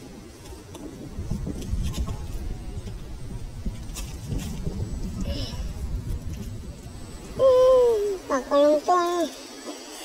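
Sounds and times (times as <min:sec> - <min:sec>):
low rumbling noise: 0:00.0 - 0:09.2
person's high drawn-out vocal sound: 0:07.4 - 0:08.8.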